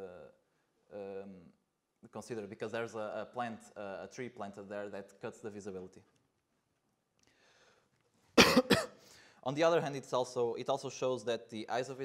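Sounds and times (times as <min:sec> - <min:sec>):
man coughing: 0:08.4 - 0:09.0.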